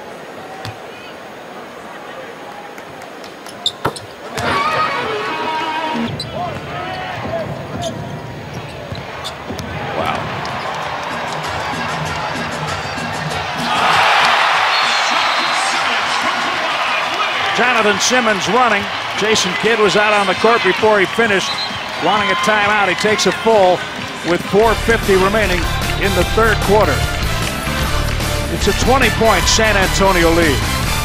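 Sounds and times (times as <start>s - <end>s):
crowd cheering: 0.0s - 31.0s
arena music: 10.0s - 14.7s, 17.6s - 31.0s.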